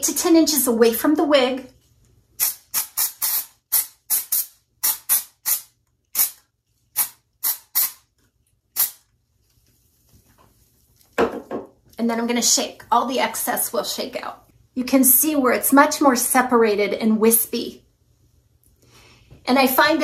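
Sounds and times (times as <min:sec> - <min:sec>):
aerosol spray puffs: 0:02.4 - 0:06.4, 0:07.0 - 0:08.1, 0:08.8 - 0:09.0.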